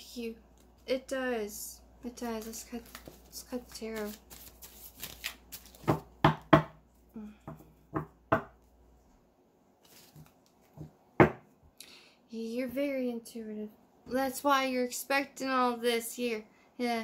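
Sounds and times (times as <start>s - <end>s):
cards being shuffled: 2.2s - 6.1s, 9.8s - 10.7s.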